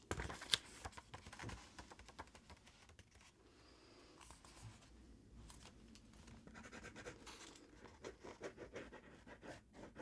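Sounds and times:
pencil scratching paper: 0:06.5 - 0:10.0.

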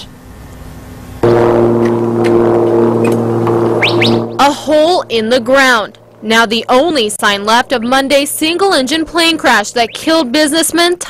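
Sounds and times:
low droning tone: 0:01.2 - 0:07.9.

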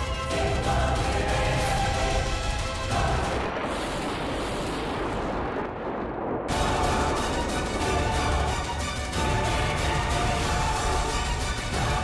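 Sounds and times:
dramatic background score: 0:00.0 - 0:05.5, 0:06.5 - 0:12.0
rumbling noisy sound effect: 0:00.0 - 0:12.0.

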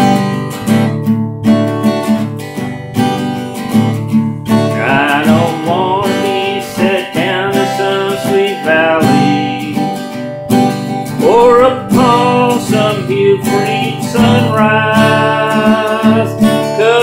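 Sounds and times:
acoustic guitar strumming: 0:00.0 - 0:17.0
man singing: 0:04.6 - 0:10.2, 0:11.1 - 0:17.0.

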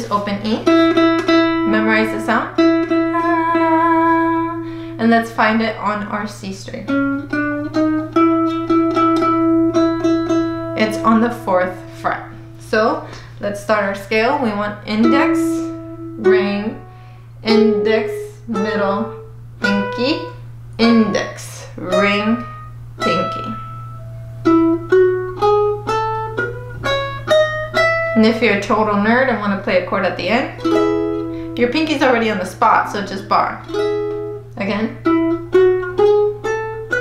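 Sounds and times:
ukulele plucking scale: 0:00.0 - 0:06.0, 0:06.7 - 0:13.4, 0:14.2 - 0:37.0
ukulele plucking a note: 0:02.6 - 0:04.9.

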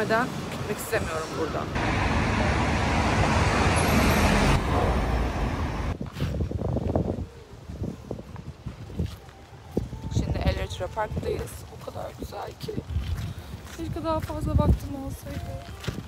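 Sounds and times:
passing cars: 0:00.0 - 0:06.0.

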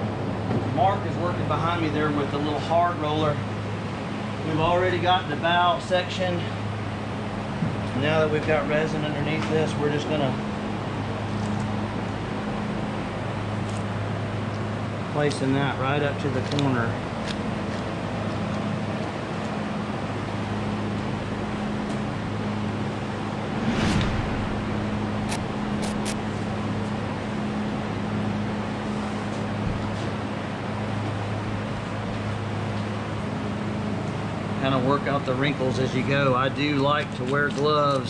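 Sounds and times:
ventilation fan humming: 0:00.0 - 0:38.0.

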